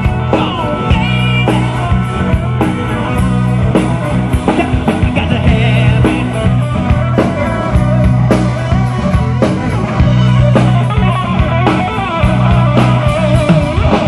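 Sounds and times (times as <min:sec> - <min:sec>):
bass guitar: 0:00.0 - 0:14.0
drum kit beat: 0:00.0 - 0:14.0
electric guitars: 0:00.0 - 0:14.0.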